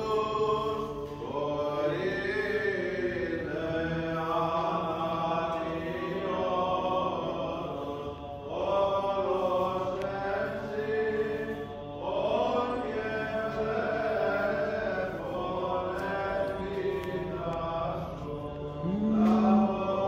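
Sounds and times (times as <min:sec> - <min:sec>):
chant with gliding sung phrases: 0:00.0 - 0:20.0.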